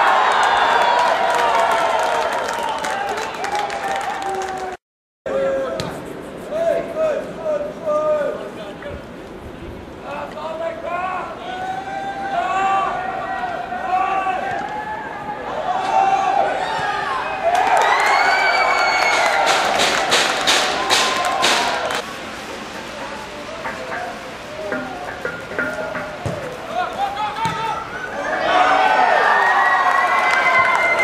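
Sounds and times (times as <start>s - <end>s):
crowd shouting and cheering: 0.0s - 5.8s, 10.9s - 31.0s.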